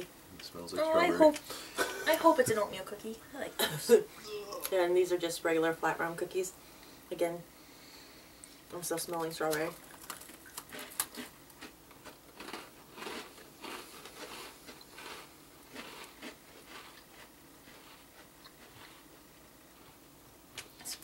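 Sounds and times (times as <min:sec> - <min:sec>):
crunching cookies: 0:09.5 - 0:20.0.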